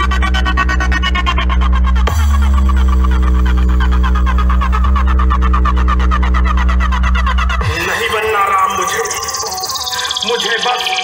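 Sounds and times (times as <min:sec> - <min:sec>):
heavy sustained bass drone: 0:00.0 - 0:10.4
dubstep remix through loud speakers: 0:00.0 - 0:11.0
fast pulsing beat: 0:00.0 - 0:11.0.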